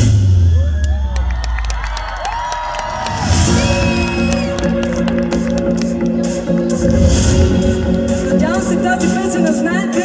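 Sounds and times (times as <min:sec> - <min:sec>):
audience cheering and whooping: 0:00.4 - 0:06.3
live pop music over pa: 0:03.3 - 0:10.0.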